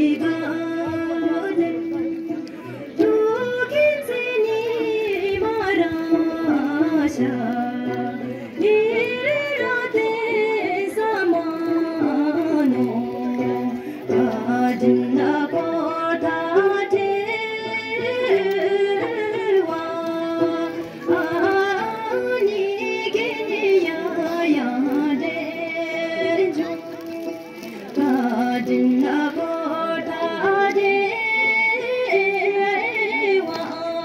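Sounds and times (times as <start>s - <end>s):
woman singing folk song: 0.0s - 34.0s.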